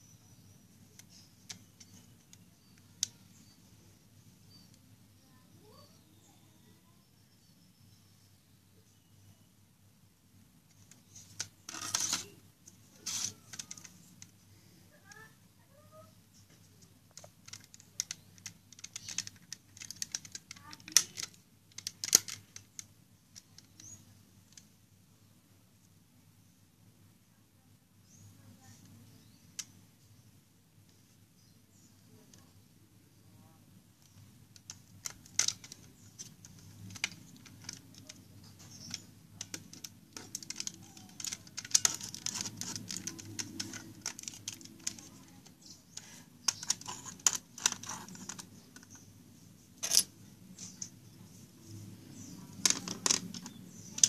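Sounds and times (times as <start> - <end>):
plastic toy parts clicking: 1.0 - 3.5, 10.7 - 12.3, 12.9 - 14.4, 17.1 - 24.7, 34.0 - 49.0, 49.8 - 50.9, 52.2 - 54.0.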